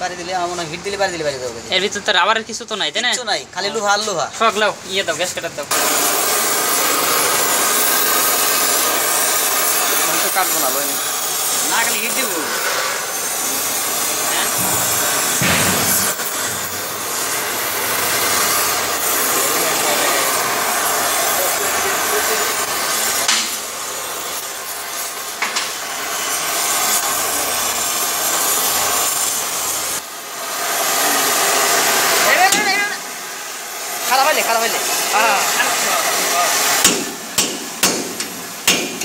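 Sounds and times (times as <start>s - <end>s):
torch flame hissing: 3.8s - 39.0s.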